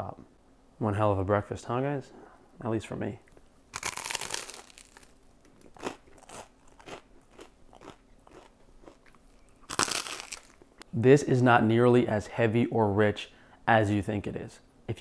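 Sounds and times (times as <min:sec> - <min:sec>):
crunchy bite into toast: 0:03.7 - 0:10.7
mouth-closed chewing: 0:03.8 - 0:10.7.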